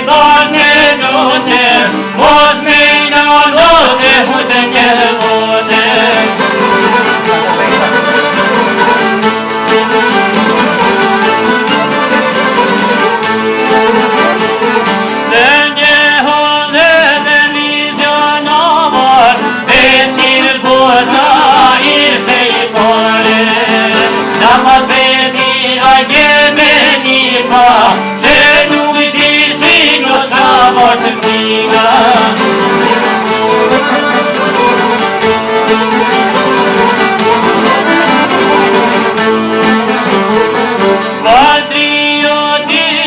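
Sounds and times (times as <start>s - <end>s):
man singing: 0.0s - 6.6s, 15.3s - 34.3s, 41.2s - 43.0s
plucked lutes: 0.0s - 16.0s, 16.6s - 43.0s.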